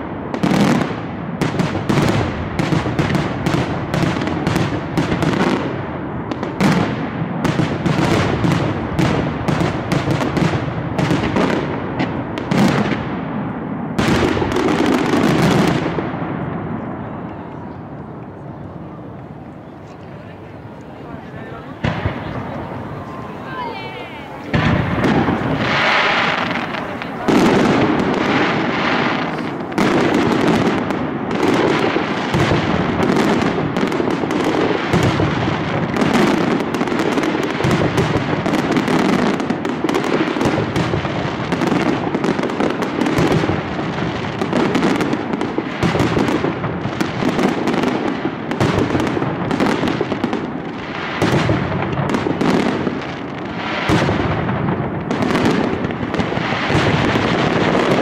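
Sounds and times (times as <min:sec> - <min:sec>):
firecracker bangs: 0:00.0 - 0:17.2, 0:21.2 - 0:58.0.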